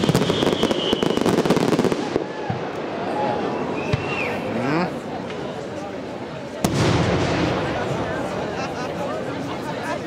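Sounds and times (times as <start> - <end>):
firework bang echoing: 0.0 - 2.7, 6.6 - 8.3
people talking: 7.5 - 10.0.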